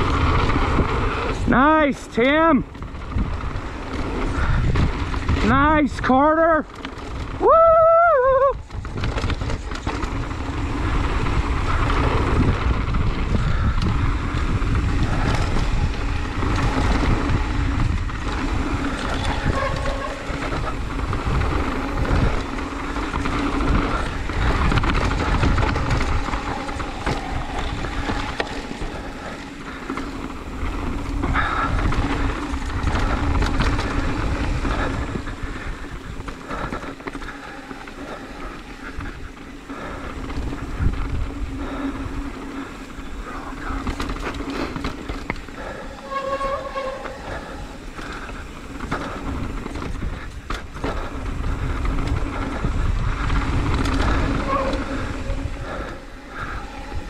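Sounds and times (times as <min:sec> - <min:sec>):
wind on microphone: 0:00.0 - 0:01.8, 0:02.7 - 0:05.8, 0:07.0 - 0:57.0
bike rattling: 0:00.0 - 0:57.0
bike tyres rolling over dirt: 0:00.0 - 0:57.0.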